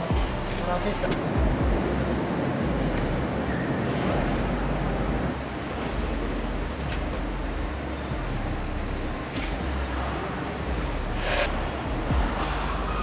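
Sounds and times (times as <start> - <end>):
factory hall rumble and hiss: 0.0 - 13.0.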